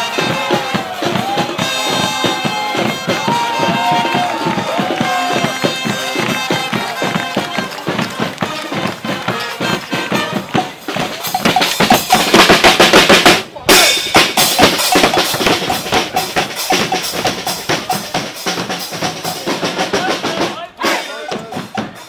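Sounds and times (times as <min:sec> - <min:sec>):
marching brass band playing: 0:00.0 - 0:22.0
pounding bass drum and snare: 0:00.0 - 0:22.0.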